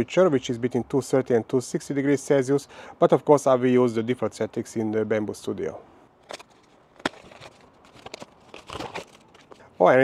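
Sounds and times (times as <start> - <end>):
handling noise: 6.2 - 9.7
plastic bags crinkling: 6.3 - 9.7.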